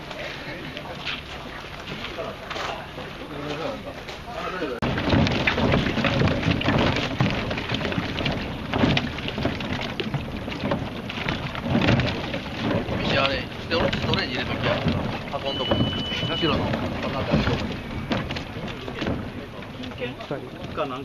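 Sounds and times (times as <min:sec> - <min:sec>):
outboard motors running: 0:00.0 - 0:21.0.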